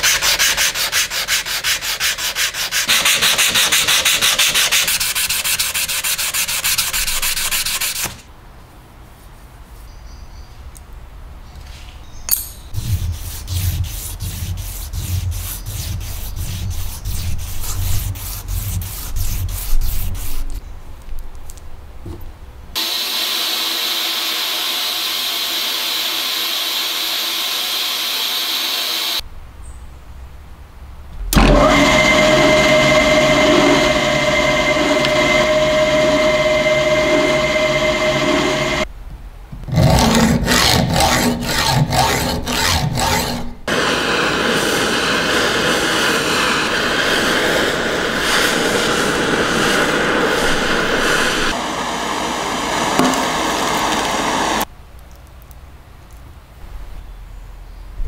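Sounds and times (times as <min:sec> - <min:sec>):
back-and-forth strokes: 0:12.8 - 0:20.5, 0:31.4 - 0:38.9
power tool whining: 0:22.8 - 0:29.2, 0:31.4 - 0:38.9, 0:43.7 - 0:54.7.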